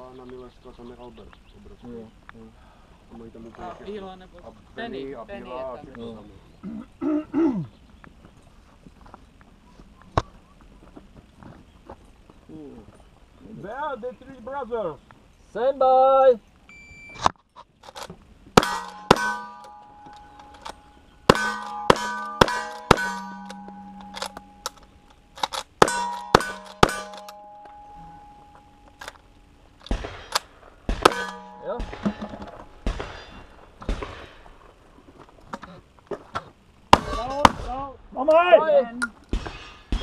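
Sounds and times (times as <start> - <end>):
steel plate ringing clang: 18.6 - 25.2, 25.8 - 29.0, 31.0 - 34.3, 36.9 - 37.6
rapid gunshots: 25.8 - 27.3, 29.9 - 32.2.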